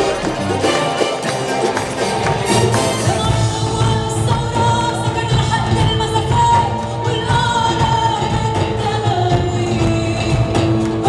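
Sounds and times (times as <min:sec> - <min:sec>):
backing band: 0:00.0 - 0:11.0
woman singing: 0:02.8 - 0:11.0.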